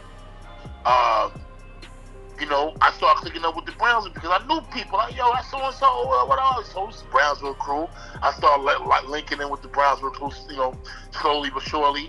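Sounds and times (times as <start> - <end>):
background music with low tones: 0.0 - 12.0.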